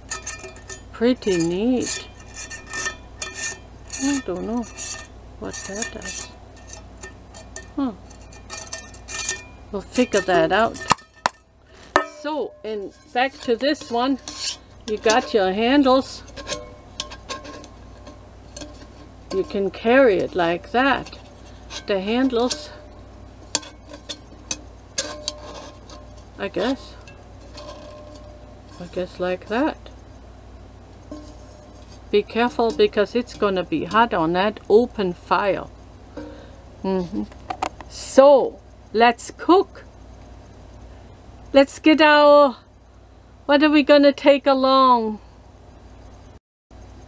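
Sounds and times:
wire handle clinking on metal pan: 0:00.0 - 0:29.8.

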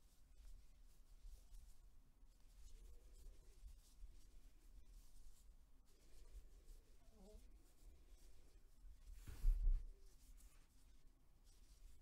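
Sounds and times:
yarn rustling through crochet stitches: 0:00.0 - 0:12.0.

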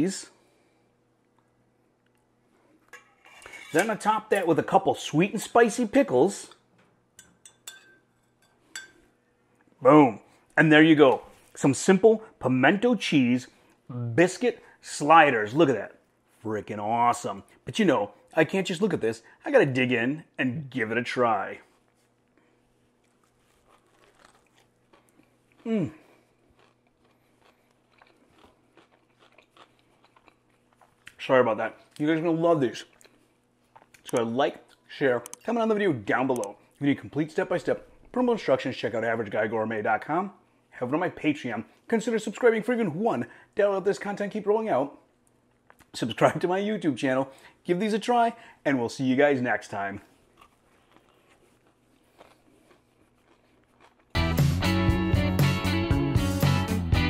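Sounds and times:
faint low steady hum: 0:00.0 - 0:54.1
chewing with mouth closed: 0:23.0 - 0:31.2, 0:50.3 - 0:54.2.

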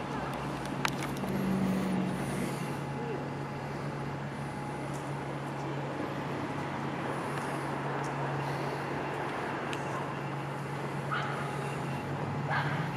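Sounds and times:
low engine hum: 0:00.0 - 0:12.9
outdoor background noise: 0:00.0 - 0:12.9.

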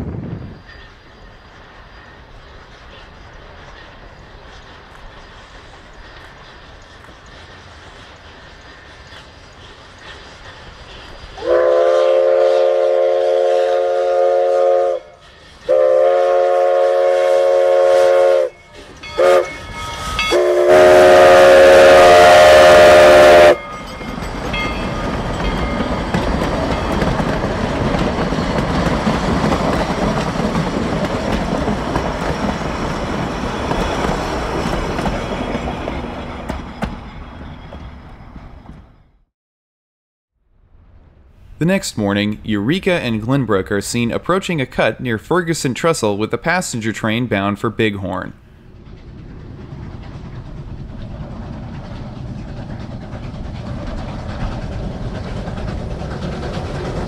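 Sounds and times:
train cars rumbling: 0:00.0 - 0:39.3, 0:40.6 - 0:57.0
steam whistle blasts: 0:11.4 - 0:23.6.

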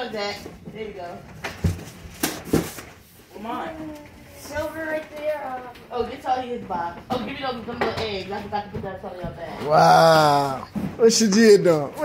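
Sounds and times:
person speaking: 0:09.6 - 0:12.0.

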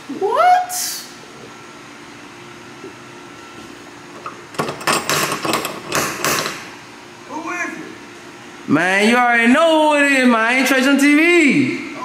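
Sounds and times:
background hum and hiss: 0:00.0 - 0:12.0.

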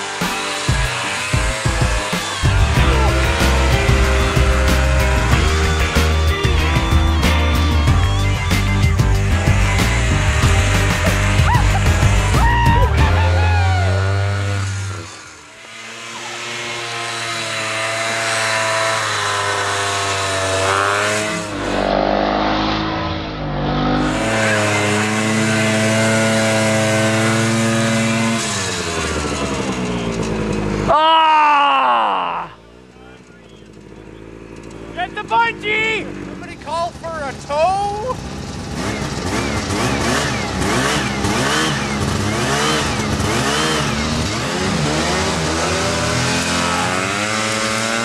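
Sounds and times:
rock music: 0:00.0 - 0:15.2
snowmobile engine revving: 0:00.0 - 0:48.0.

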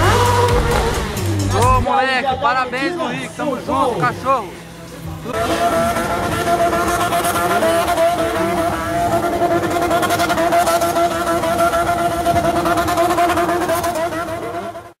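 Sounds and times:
engine at high revs: 0:00.0 - 0:01.9, 0:02.5 - 0:15.0.

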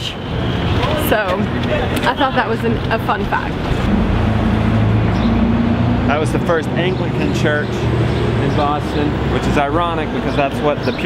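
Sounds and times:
vehicle engine humming: 0:00.0 - 0:11.0.

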